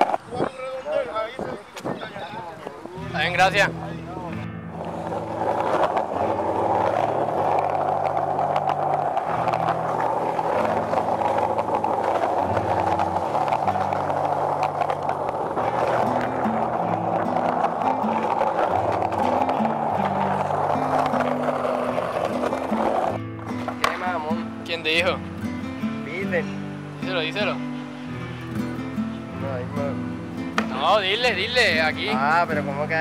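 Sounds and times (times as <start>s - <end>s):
skateboard wheels rolling on concrete: 0.0s - 33.0s.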